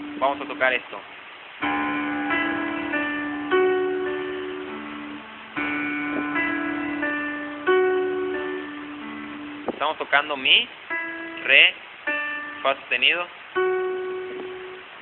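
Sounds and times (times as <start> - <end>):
piano melody: 0.0 - 0.9, 1.5 - 15.0.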